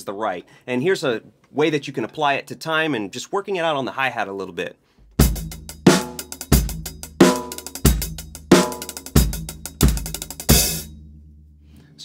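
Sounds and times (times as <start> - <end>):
drum kit playing a groove: 5.1 - 11.2.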